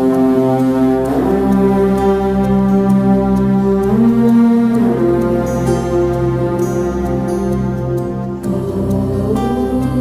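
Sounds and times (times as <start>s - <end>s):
music of held low tones: 0.0s - 10.0s.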